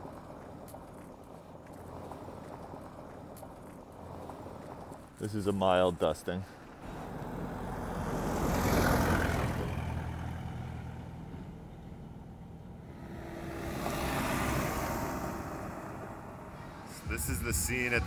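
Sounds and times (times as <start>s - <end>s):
truck passing on gravel: 0.0s - 18.0s
motorbike passing on gravel: 6.7s - 12.0s, 12.8s - 16.9s.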